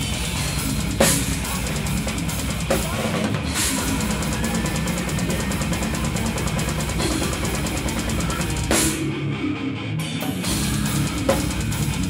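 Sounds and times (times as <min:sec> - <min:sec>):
rapid drum strokes: 0:00.0 - 0:09.2, 0:10.2 - 0:12.0
metal band playing: 0:00.0 - 0:12.0.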